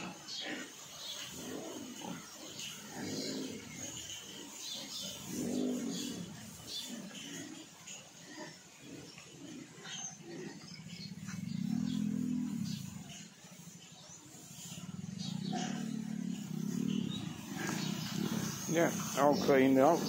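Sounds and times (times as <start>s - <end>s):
pigs grunting: 0.0s - 20.0s.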